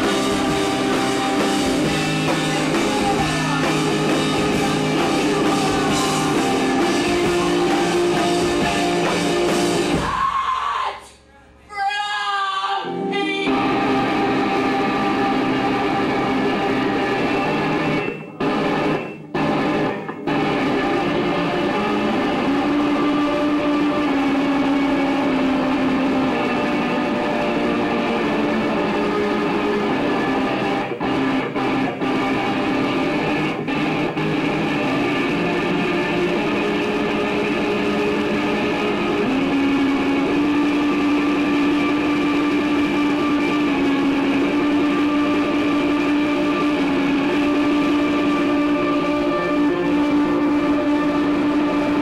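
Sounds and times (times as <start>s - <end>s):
droning guitar music: 0.0s - 10.0s, 12.8s - 52.0s.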